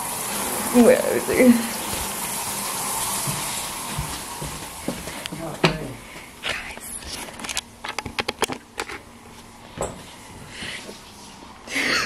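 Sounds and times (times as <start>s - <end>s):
water running from a tap: 0.0s - 6.0s.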